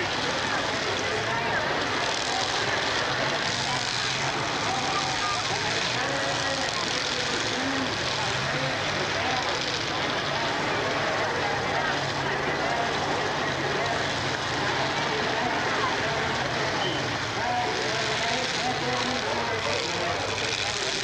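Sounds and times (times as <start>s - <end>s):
car engines droning: 0.0s - 21.0s
spectators' voices: 0.0s - 21.0s.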